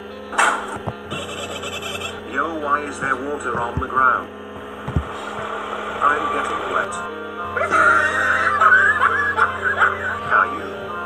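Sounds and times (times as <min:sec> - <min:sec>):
background music: 0:00.0 - 0:11.0
high chattering effect: 0:01.1 - 0:02.2.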